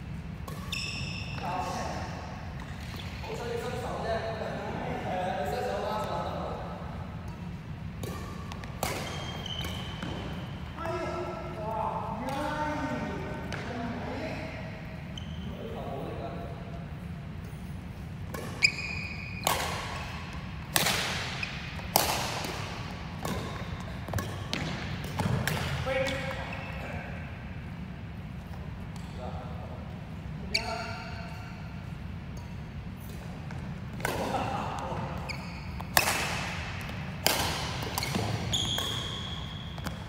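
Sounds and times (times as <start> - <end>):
racket hitting shuttlecock: 0.4 - 0.9, 7.3 - 10.5, 18.2 - 26.3, 33.1 - 34.4, 35.2 - 40.0
players' voices: 33.9 - 35.3.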